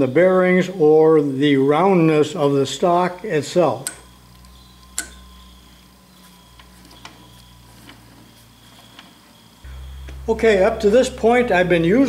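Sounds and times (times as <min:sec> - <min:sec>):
low hum: 0:03.8 - 0:12.0.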